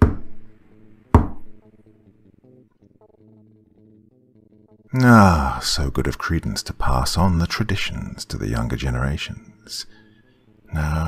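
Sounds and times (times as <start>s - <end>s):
heavy knocks on a door: 0.0s - 0.4s, 1.2s - 1.5s
faint background music: 0.0s - 11.0s.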